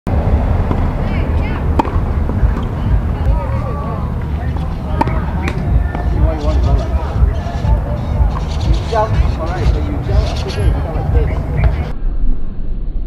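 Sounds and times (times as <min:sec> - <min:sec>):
low rumble: 0:00.1 - 0:13.0
tennis racket striking ball: 0:00.6 - 0:03.4, 0:04.2 - 0:10.5.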